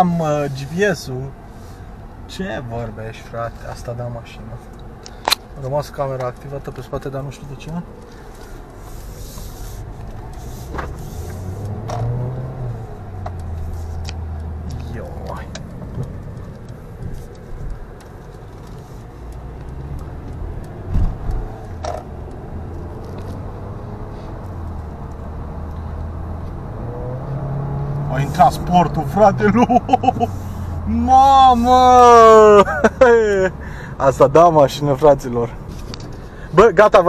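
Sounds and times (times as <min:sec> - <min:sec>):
car engine and road hum: 0:00.0 - 0:37.0.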